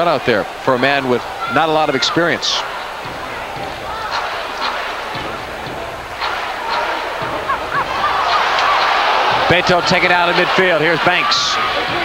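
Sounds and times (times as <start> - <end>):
arena crowd noise: 0.0 - 12.0
people shouting: 0.0 - 12.0.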